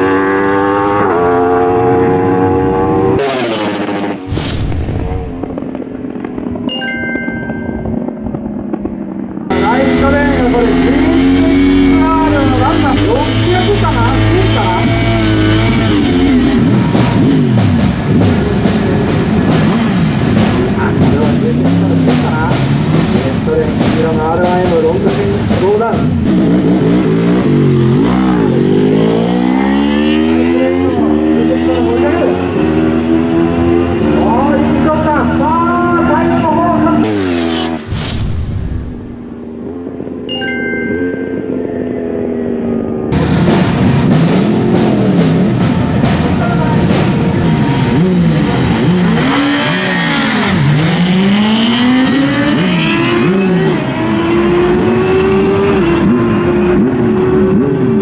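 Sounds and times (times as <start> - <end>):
motorcycle engines revving and accelerating: 0.0 - 6.7, 8.0 - 37.9, 41.4 - 58.0
short chiming sting: 6.7 - 8.2, 40.3 - 41.9.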